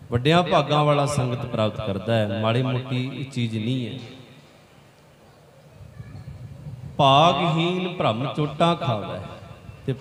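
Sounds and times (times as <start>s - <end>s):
hall of seated people background: 0.0s - 10.0s.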